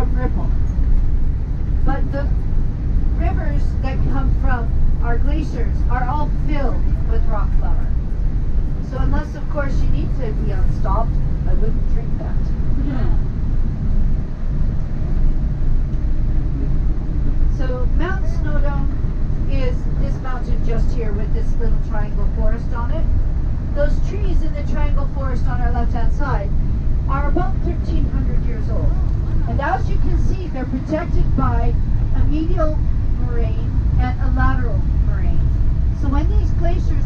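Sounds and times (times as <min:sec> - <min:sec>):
coach engine and road noise: 0:00.0 - 0:37.0.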